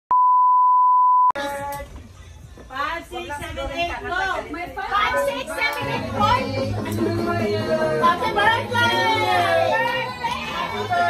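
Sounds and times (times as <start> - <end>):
steady test tone beep: 0.1 - 1.4
group of people: 1.4 - 11.0.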